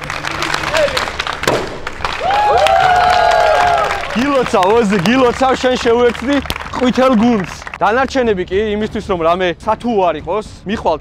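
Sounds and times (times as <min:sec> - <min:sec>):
crowd cheering and applause: 0:00.0 - 0:07.8
hand clapping: 0:00.0 - 0:07.8
ball hitting target with thud: 0:01.4 - 0:02.0.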